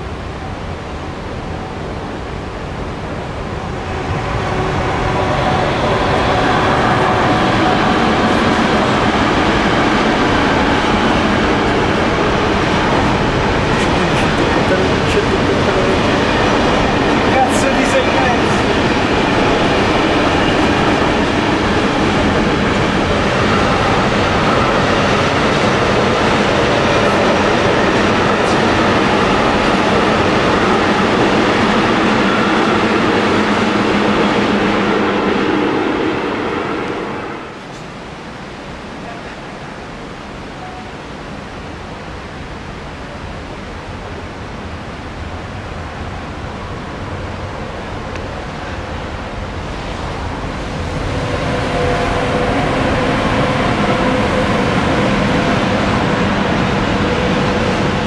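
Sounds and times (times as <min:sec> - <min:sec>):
steady rushing noise: 0:00.0 - 0:58.0.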